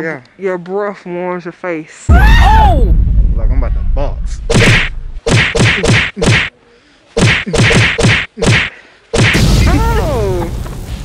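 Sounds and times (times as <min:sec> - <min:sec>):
muffled thwacks on microphone: 0:04.4 - 0:06.5, 0:07.2 - 0:09.4.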